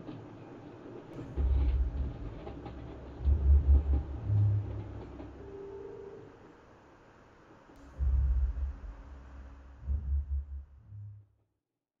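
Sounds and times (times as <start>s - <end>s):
deep low soundtrack rumble: 1.4s - 5.4s, 7.8s - 11.3s.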